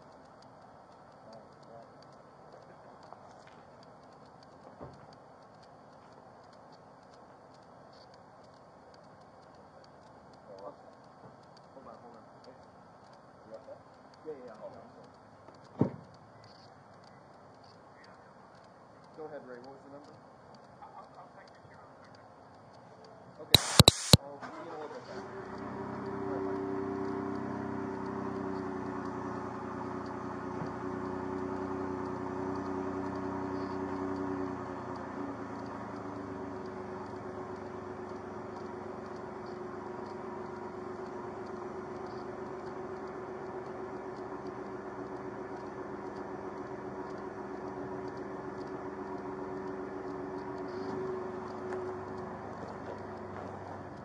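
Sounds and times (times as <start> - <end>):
vehicle engine humming: 0.0 - 54.0
sharp loud burst: 23.6 - 24.2.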